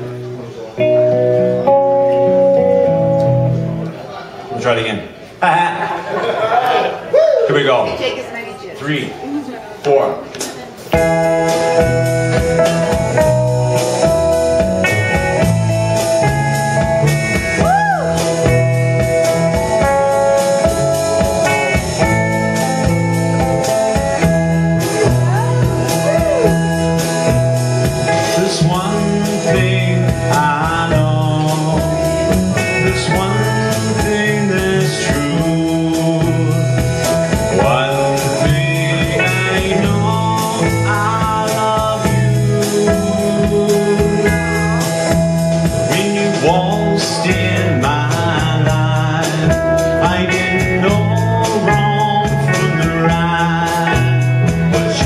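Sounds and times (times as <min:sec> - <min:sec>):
held bass notes: 0:00.0 - 0:04.1, 0:10.9 - 0:55.0
electric guitar playing: 0:00.0 - 0:04.2, 0:10.8 - 0:55.0
man singing into microphone: 0:28.0 - 0:55.0.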